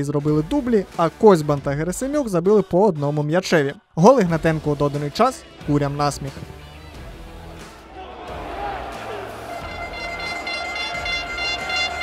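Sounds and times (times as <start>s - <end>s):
stadium crowd background: 7.2s - 12.0s.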